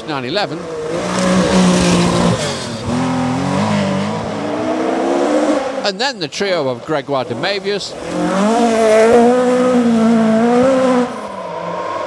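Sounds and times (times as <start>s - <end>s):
car engine at high revs: 0.5s - 5.8s, 7.2s - 12.0s.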